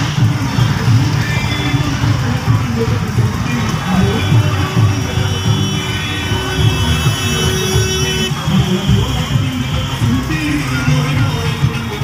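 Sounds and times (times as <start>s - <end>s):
music with heavy pulsing beat: 0.0s - 12.0s.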